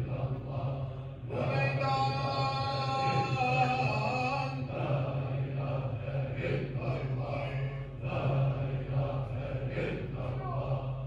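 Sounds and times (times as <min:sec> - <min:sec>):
person chanting: 0:00.0 - 0:11.0
steady low hum: 0:00.0 - 0:11.0.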